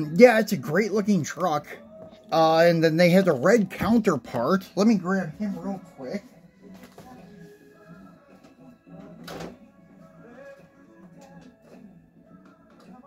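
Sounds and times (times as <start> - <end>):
radio music: 0.0 - 13.0.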